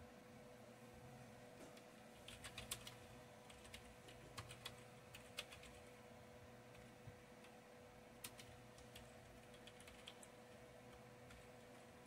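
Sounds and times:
faint hum: 0.0 - 12.0
keyboard typing: 2.1 - 6.0, 8.2 - 11.8.

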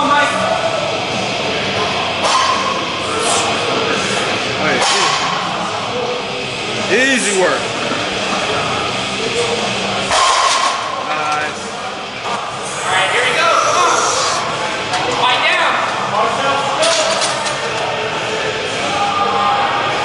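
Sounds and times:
indistinct voices: 0.0 - 20.0.

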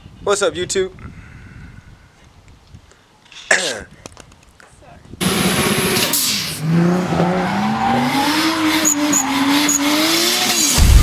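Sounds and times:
tires squealing: 5.2 - 10.8
car engine revving: 5.2 - 11.0
loud low boom: 10.8 - 11.0.

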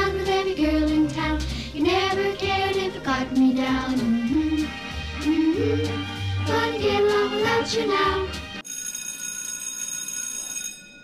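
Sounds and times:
school bell ringing: 8.6 - 11.0.

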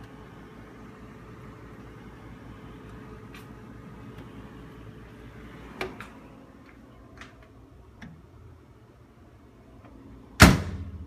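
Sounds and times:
refrigerator door thudding shut: 10.4 - 11.0.

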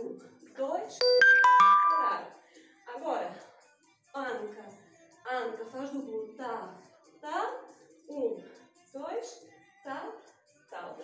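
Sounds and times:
bright chime notes: 1.0 - 2.3.

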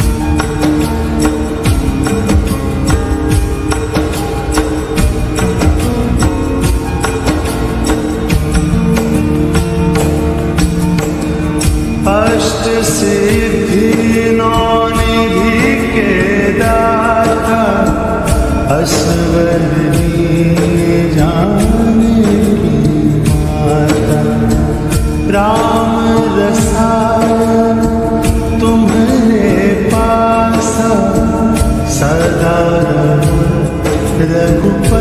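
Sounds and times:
percussion strokes: 0.0 - 35.0
sustained instrumental accompaniment: 0.0 - 35.0.

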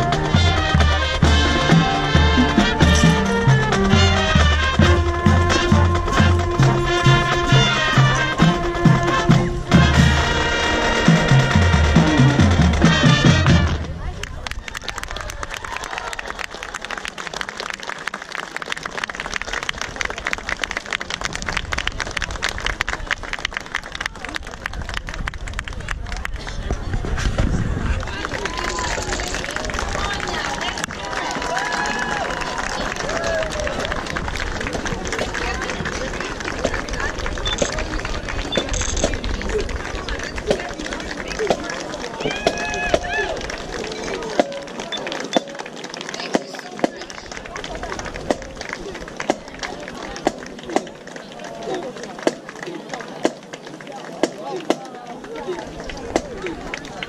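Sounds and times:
marching snare drum beats: 0.0 - 14.0
crowd applauding: 0.0 - 27.0, 27.8 - 57.0.

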